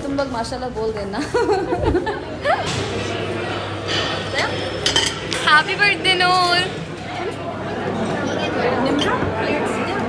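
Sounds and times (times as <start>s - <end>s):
murmur of dining room: 0.0s - 10.0s
cutlery clinking against dishes: 3.8s - 5.6s, 8.8s - 9.4s.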